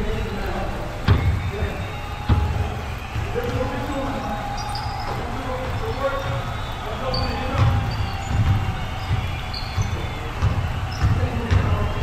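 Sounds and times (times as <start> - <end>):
sneaker squeaks: 0.0 - 12.0
basketball dribbling on hardwood: 1.0 - 12.0.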